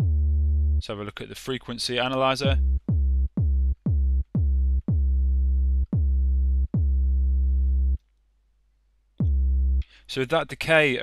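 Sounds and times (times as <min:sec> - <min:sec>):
synthesized kick drum: 0:00.0 - 0:00.8, 0:02.4 - 0:07.9, 0:09.2 - 0:09.8.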